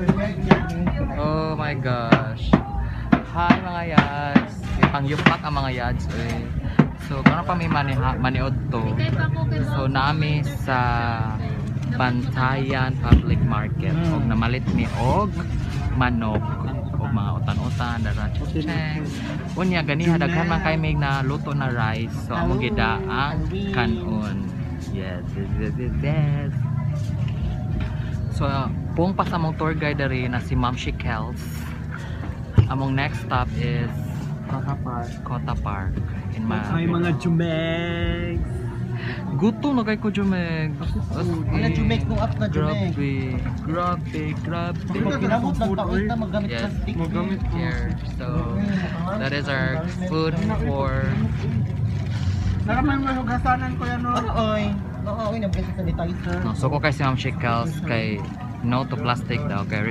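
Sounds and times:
people talking: 0.0s - 31.9s, 32.6s - 51.6s, 52.6s - 59.9s
low rumble of street traffic: 0.0s - 59.9s.

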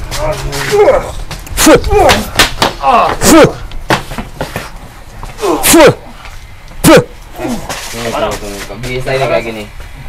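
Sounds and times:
low voices: 0.0s - 3.8s, 4.5s - 10.0s
men shouting cries: 0.1s - 3.7s, 5.3s - 6.2s, 6.8s - 7.8s.

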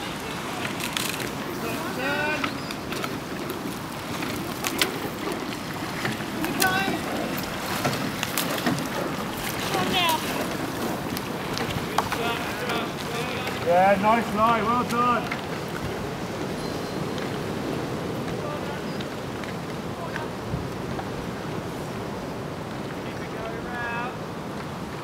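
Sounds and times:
oar blades splashing water: 0.0s - 23.0s
oars clunking in gates: 0.0s - 25.0s
wind noise on microphone: 15.4s - 22.9s.

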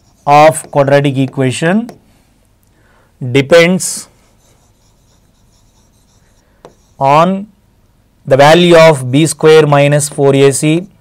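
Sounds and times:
marker pen writing on board: 0.0s - 2.0s, 4.2s - 7.1s.

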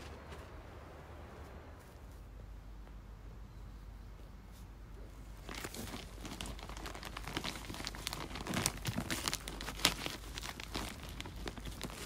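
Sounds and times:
plastic bag crinkling: 5.4s - 12.0s.

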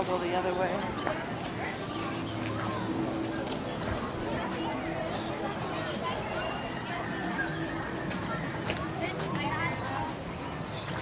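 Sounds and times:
people talking while walking: 0.0s - 11.0s.

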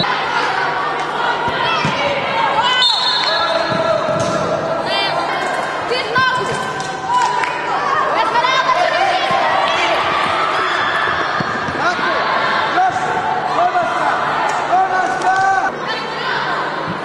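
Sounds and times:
girls shouting and calling: 7.1s - 11.4s.

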